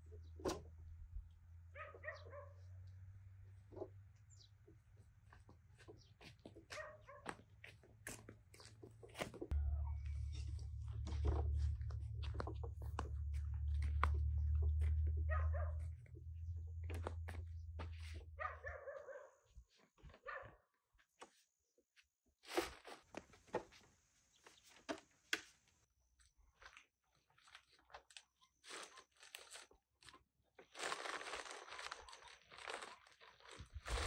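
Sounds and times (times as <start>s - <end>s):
low rumble: 9.5s - 18.3s.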